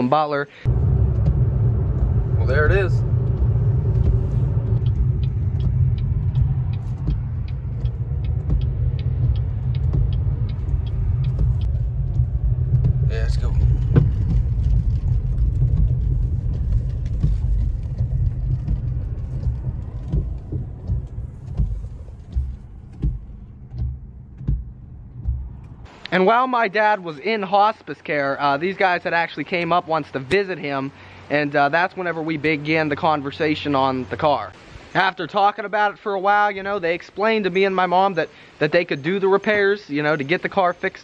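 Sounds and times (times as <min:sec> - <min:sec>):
car road rumble: 0:00.6 - 0:26.0
faint regular ticking: 0:00.6 - 0:26.1.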